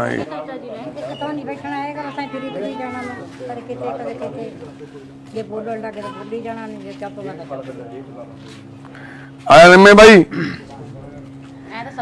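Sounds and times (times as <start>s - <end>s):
faint men talking: 0.0s - 11.7s
steady low hum: 0.0s - 12.0s.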